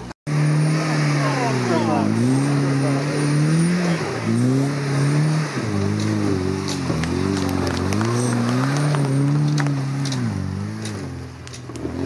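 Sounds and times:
car engine revving uphill: 0.0 - 12.0.

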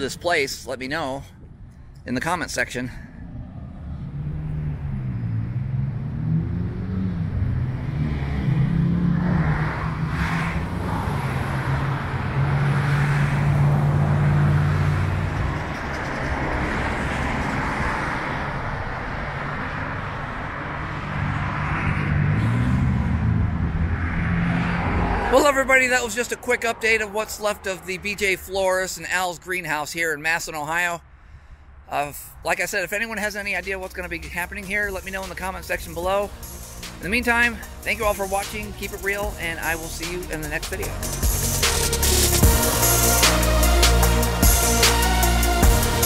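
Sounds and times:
vehicles passing on road: 0.0 - 46.0.

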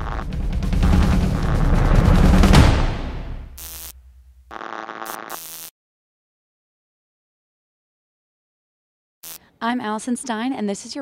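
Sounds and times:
glitchy electronic buzzes: 0.0 - 0.2, 3.6 - 5.7
low boom: 0.0 - 4.5.

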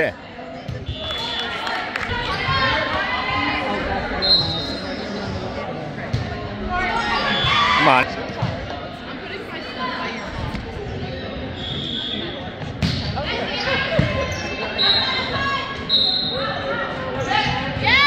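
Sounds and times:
people shouting in a hall: 14.7 - 18.0.

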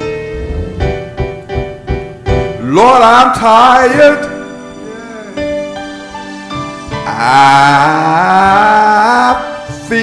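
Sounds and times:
man singing into a microphone: 2.6 - 5.7, 6.9 - 10.0.

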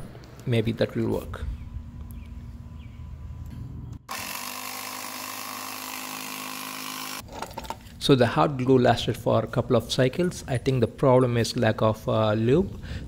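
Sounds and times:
small air compressor running: 4.1 - 7.2.

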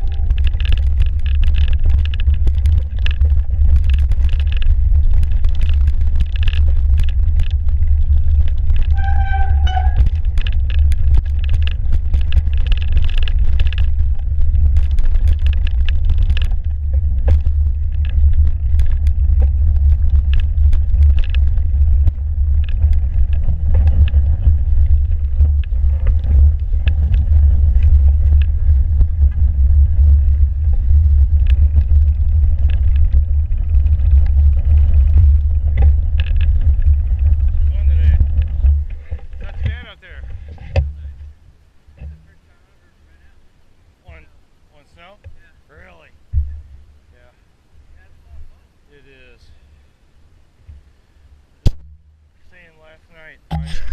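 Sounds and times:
bike clicks and rattles: 0.0 - 41.1
wind and vibration rumble: 0.0 - 53.9.

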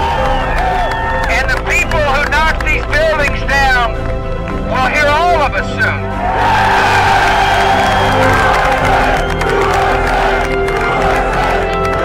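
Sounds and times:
crowd cheering and whooping: 0.0 - 2.2, 6.0 - 12.0
background music: 0.0 - 12.0.

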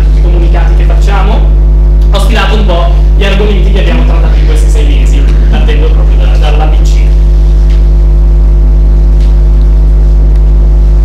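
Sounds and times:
man speaking through microphone: 0.0 - 7.3
electrical mains hum: 0.0 - 11.0.

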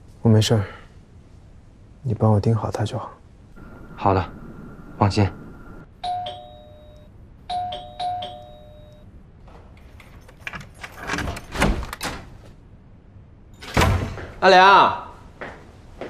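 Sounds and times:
two-note electronic doorbell chime: 6.0 - 9.1
key rattling in door lock: 9.8 - 12.2.

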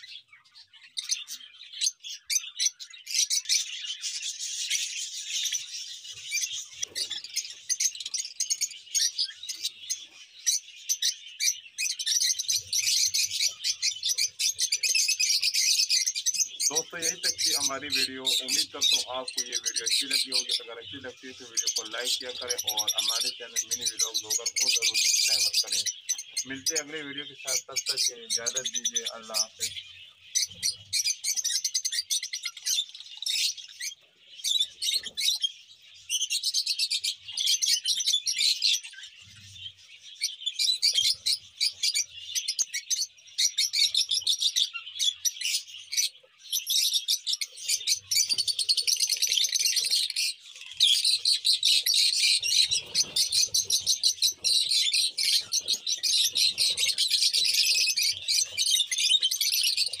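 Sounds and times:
lovebirds chirping: 0.0 - 60.0.

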